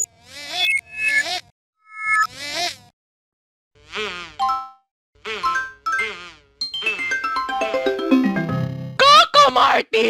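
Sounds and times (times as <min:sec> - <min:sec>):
buzzy warped jingle: 0:05.6 - 0:08.8
chord of steady tones: 0:05.6 - 0:08.9.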